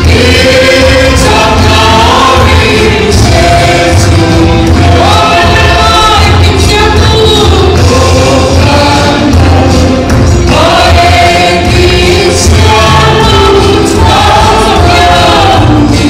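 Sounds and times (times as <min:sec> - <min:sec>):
congregation singing a hymn: 0:00.0 - 0:16.0
instrumental accompaniment: 0:00.0 - 0:16.0.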